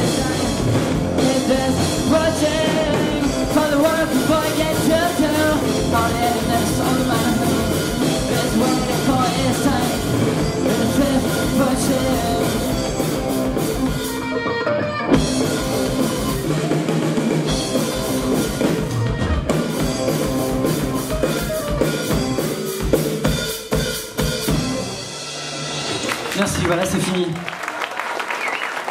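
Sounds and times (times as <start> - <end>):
electric guitars: 0.0 - 23.2
drum kit: 0.0 - 27.2.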